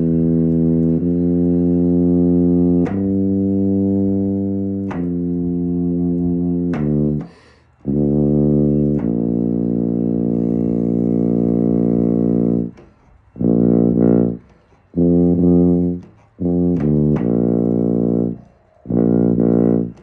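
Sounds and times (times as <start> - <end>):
tuba playing low notes: 0.0 - 20.0
player taking a breath: 7.2 - 7.8.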